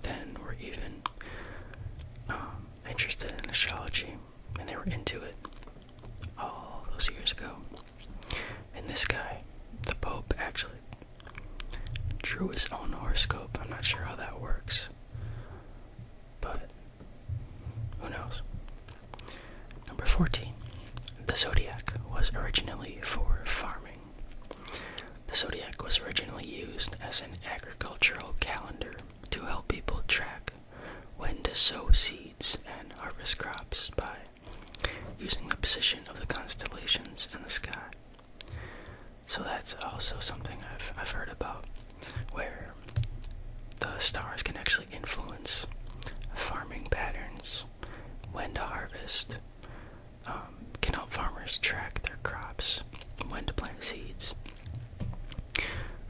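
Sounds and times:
man whispering: 0:00.0 - 0:15.1, 0:16.4 - 0:16.8, 0:17.9 - 0:38.6, 0:39.2 - 0:43.0, 0:43.7 - 0:49.5, 0:50.2 - 0:54.7.

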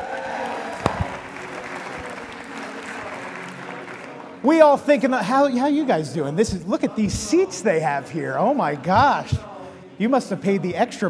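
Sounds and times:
audience applauding: 0:00.0 - 0:04.9.

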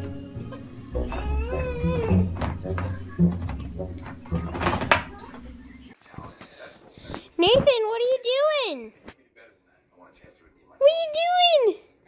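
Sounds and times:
toddler wailing: 0:01.0 - 0:02.3.

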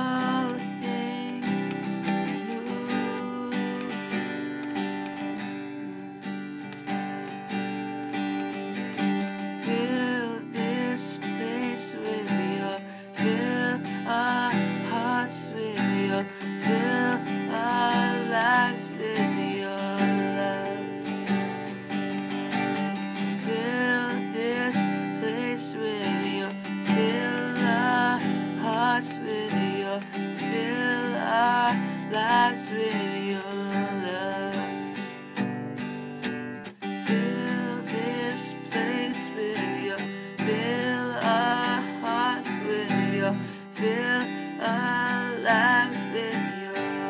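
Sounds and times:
person singing: 0:00.0 - 0:36.1, 0:36.7 - 0:47.0
strummed acoustic guitar: 0:00.0 - 0:47.0.

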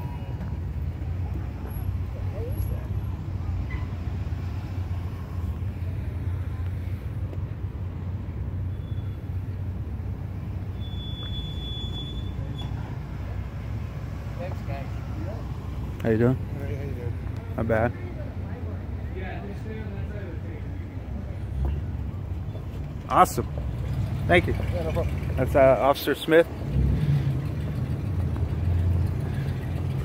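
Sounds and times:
faint distant voices: 0:00.0 - 0:09.7
street traffic rumble: 0:00.0 - 0:30.0.

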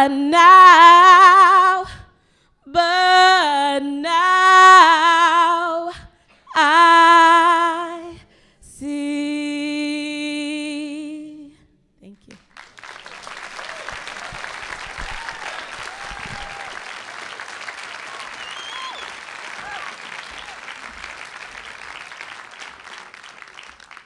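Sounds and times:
audience applauding: 0:12.3 - 0:24.0.

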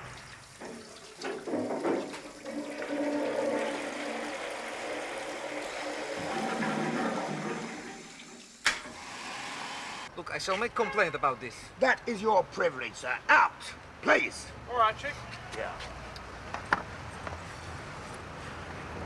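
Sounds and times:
toilet flushing: 0:00.5 - 0:10.1.

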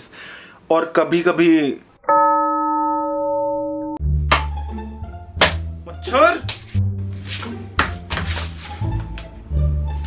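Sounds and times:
bell-like chime ringing: 0:02.0 - 0:04.0.

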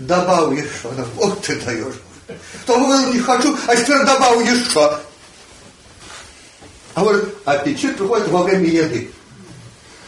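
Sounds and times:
recording hiss: 0:00.0 - 0:10.0.

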